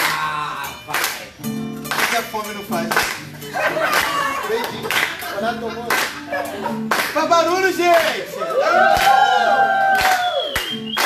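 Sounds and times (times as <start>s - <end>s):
acoustic guitar music: 0.0s - 11.0s
group clapping along: 0.0s - 11.0s.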